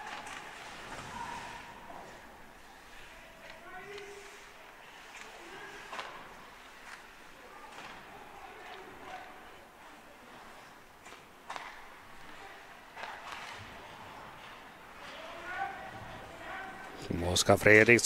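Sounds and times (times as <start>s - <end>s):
hockey sticks and puck clacking: 0.0s - 9.5s, 10.3s - 17.8s.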